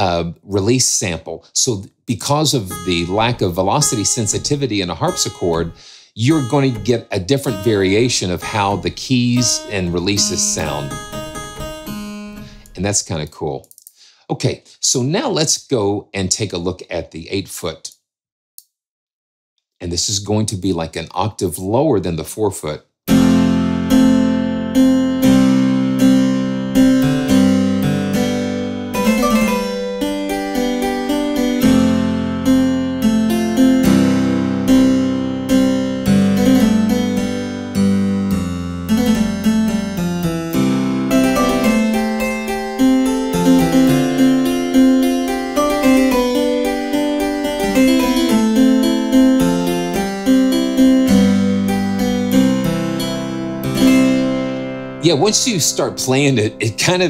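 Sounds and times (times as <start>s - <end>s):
harpsichord chords and runs: 2.3s - 13.0s, 23.1s - 57.0s.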